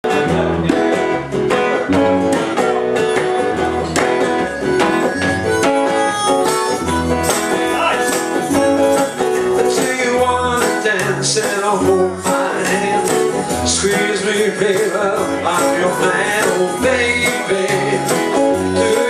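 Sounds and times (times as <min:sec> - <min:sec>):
plucked double bass: 0:00.0 - 0:19.0
strummed guitar: 0:00.0 - 0:19.0
harmonica: 0:01.9 - 0:19.0.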